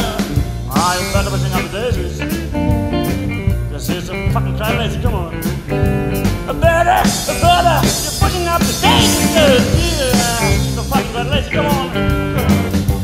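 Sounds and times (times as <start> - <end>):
bass guitar: 0.0 - 13.0
drums: 0.0 - 13.0
electric guitar lead with bending notes: 0.0 - 13.0.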